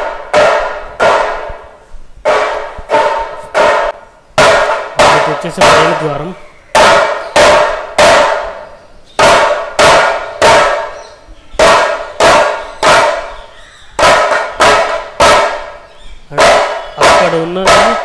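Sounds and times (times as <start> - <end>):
barrel drum strokes: 0.0 - 18.0.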